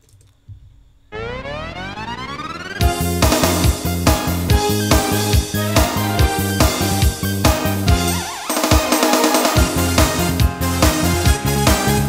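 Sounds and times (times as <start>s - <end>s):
synthesizer tone gliding upward: 1.1s - 7.2s.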